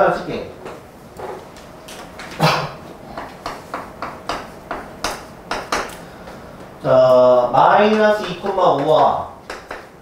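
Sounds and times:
chalk knocking on chalkboard: 3.2s - 5.9s, 7.9s - 10.0s
chalk tapping and scratching: 7.8s - 10.0s.

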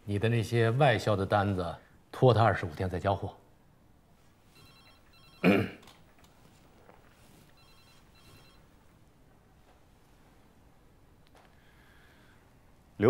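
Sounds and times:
telephone ringing: 4.5s - 5.6s, 7.4s - 8.9s
man's short vocal sound: 5.4s - 5.8s.

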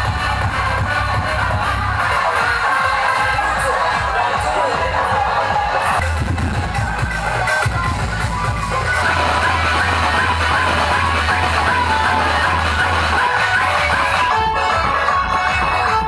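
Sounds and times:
loud music with heavy bass: 0.0s - 16.0s.

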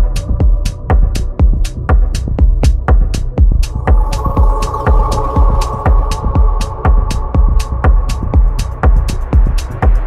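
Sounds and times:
kick drum: 0.0s - 10.0s
off-beat hi-hats: 0.0s - 10.0s.

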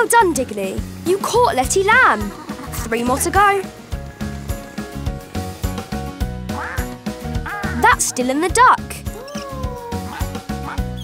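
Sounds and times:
cartoon music with bass beat: 1.0s - 11.0s
cartoon duck quack: 6.6s - 8.2s.

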